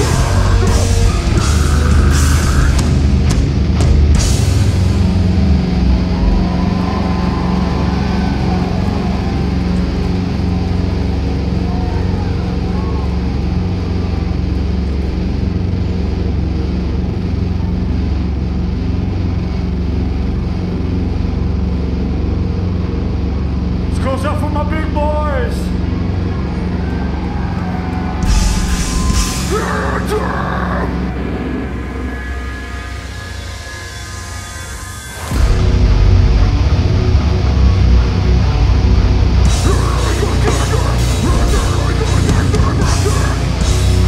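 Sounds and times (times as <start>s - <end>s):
amplified band droning: 0.0s - 44.0s
faint voices: 6.4s - 14.6s.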